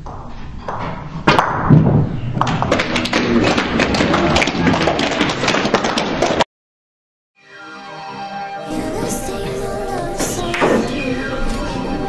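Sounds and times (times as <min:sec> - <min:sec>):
people clapping: 0:02.4 - 0:06.4.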